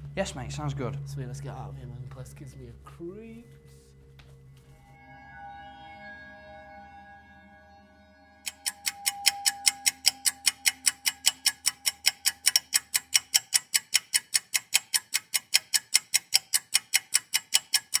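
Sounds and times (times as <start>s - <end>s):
sustained music drone: 0.0s - 13.5s
clock ticking rapidly: 8.5s - 18.0s.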